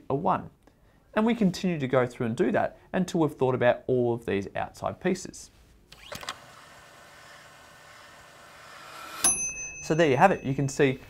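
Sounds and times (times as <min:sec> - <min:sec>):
bright bell-like ding: 0:09.2 - 0:11.0.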